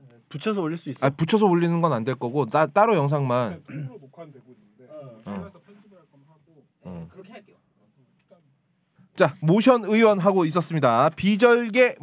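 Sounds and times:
faint murmuring: 3.4 - 8.7.

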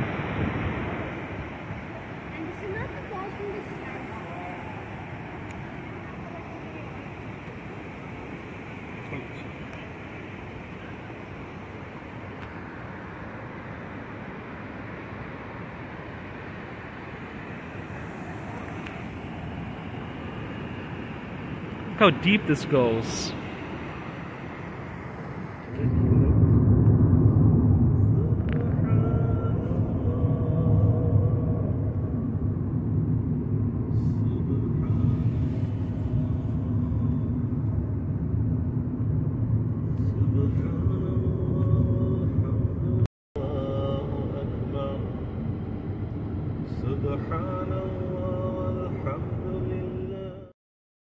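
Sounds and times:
car road noise rumble: 0.0 - 50.5.

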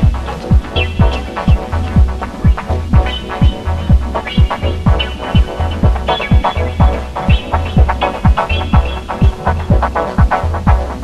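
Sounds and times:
deep throbbing bass pulse: 0.0 - 11.0
echoing chord stabs: 0.0 - 11.0
kick drum beat: 0.0 - 11.0.

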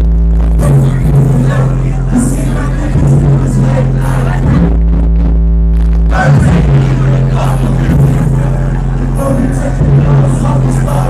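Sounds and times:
deep held bass note: 0.0 - 11.0
hip hop music over sound system: 0.0 - 11.0.

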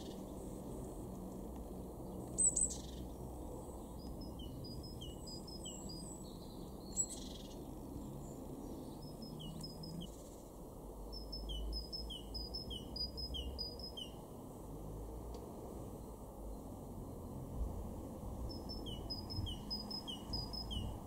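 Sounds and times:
great tit singing two-note song: 18.5 - 21.0.

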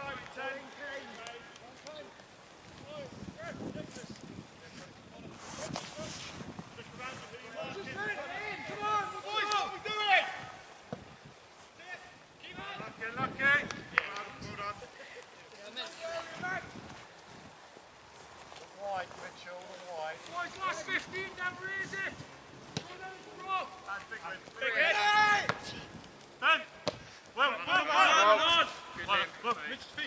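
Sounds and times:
players shouting: 0.0 - 2.3, 7.6 - 10.8, 20.2 - 30.0.

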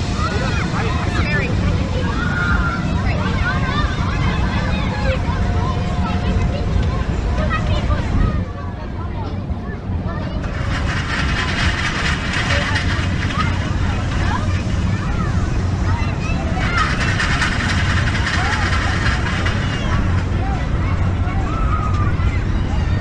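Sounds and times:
distant voices: 0.0 - 23.0
low rumble: 0.0 - 23.0
rushing noise: 10.4 - 23.0.

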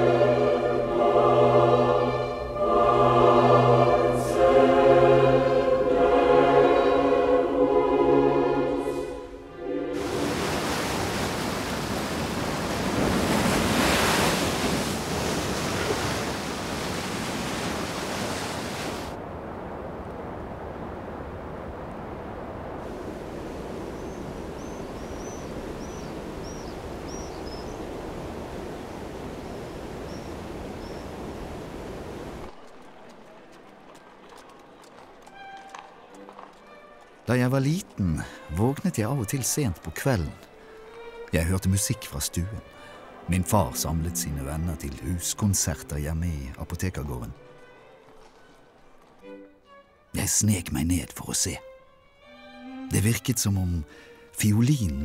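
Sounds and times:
choir music: 0.0 - 11.3, 35.3 - 48.0
waterfall rushing: 0.0 - 32.6, 40.5 - 46.2
high bird chirps: 23.9 - 27.8.

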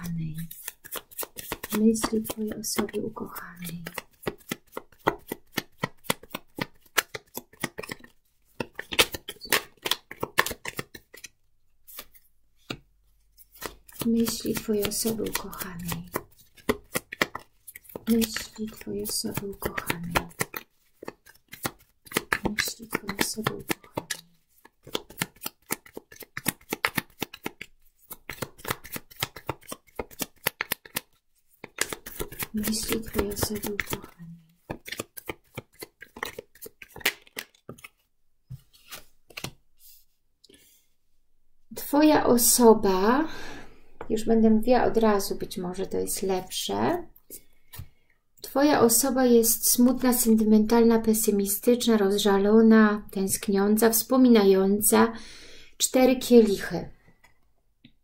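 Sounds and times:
cards clicking while shuffled: 0.4 - 2.9, 3.6 - 12.8, 13.4 - 39.6.

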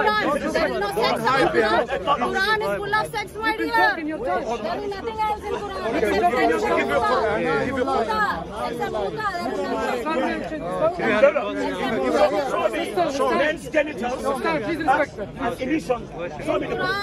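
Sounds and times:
people arguing: 0.0 - 17.0.

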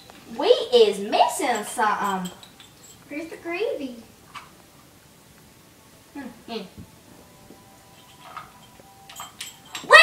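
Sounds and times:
toy dishes clicking: 8.0 - 10.0.

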